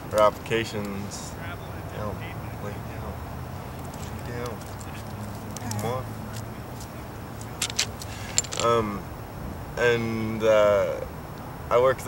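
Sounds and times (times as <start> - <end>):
steady low hum: 0.0 - 12.0
dog chain collar clinking: 7.6 - 8.8.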